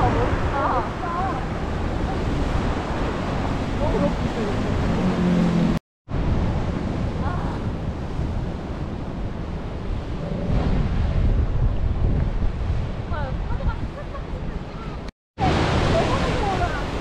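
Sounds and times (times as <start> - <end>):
wind buffeting microphone: 0.0 - 17.0
waves breaking over rocks: 15.4 - 17.0.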